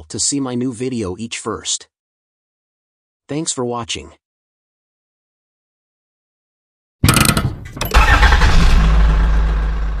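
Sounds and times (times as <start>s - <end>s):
engine cranking clicks: 7.0s - 9.0s
engine running deep note: 7.8s - 10.0s.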